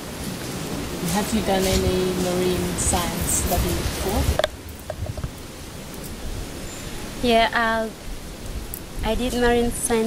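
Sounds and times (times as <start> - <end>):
even hiss: 0.0 - 10.0.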